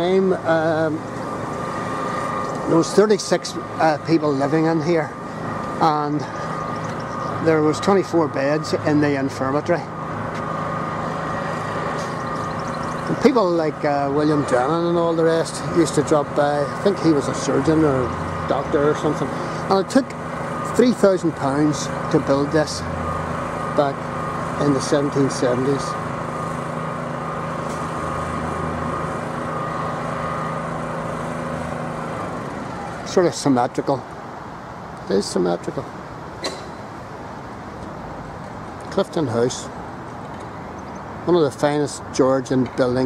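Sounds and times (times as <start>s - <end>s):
motor engine idling: 0.0s - 33.4s.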